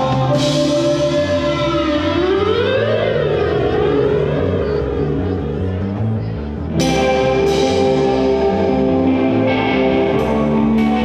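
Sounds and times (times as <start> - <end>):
siren-like lead guitar tone: 0.0 - 5.9, 6.8 - 11.0
bass line: 0.0 - 11.0.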